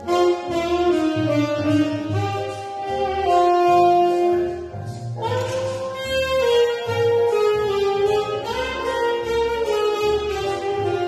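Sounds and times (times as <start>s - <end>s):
recorded accompaniment with bass line: 0.0s - 11.0s
tenor saxophone melody: 0.0s - 11.0s.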